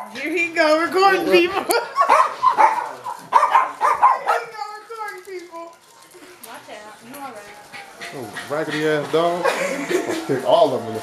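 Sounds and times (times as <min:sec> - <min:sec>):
small dogs yapping: 0:01.6 - 0:04.7.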